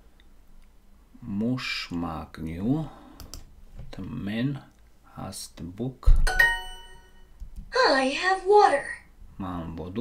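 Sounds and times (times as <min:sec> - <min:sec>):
computer mouse clicks: 0:03.2 - 0:03.5.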